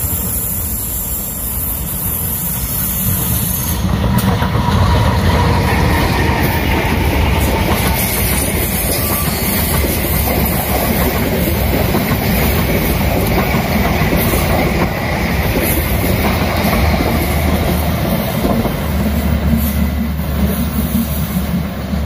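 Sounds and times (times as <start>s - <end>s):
train wheels rolling on rails: 0.0s - 22.0s.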